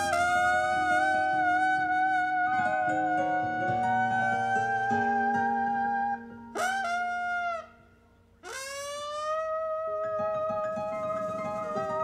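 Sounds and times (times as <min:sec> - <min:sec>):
live band long held notes: 0:00.0 - 0:07.7.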